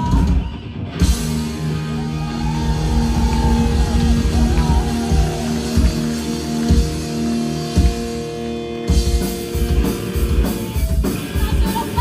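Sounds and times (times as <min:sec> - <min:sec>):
live rock band: 0:00.0 - 0:12.0
low drum accents: 0:01.0 - 0:08.3.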